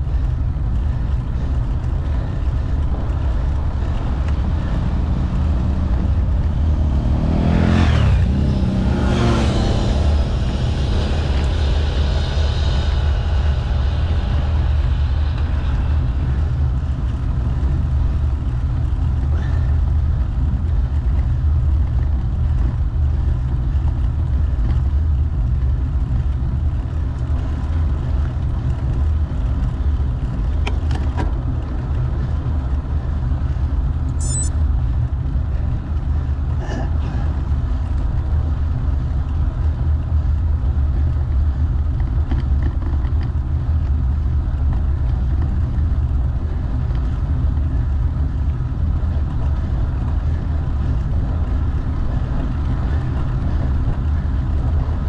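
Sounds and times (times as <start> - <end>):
wind and road noise rumble: 0.0 - 55.0
vehicle passing: 0.2 - 18.6.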